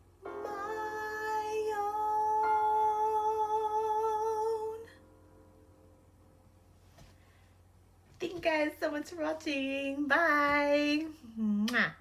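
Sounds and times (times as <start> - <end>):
woman singing with vibrato: 0.3 - 5.0, 8.4 - 11.7.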